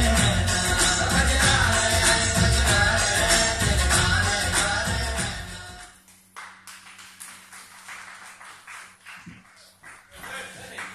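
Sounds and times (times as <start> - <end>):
scattered clapping: 6.1 - 10.9.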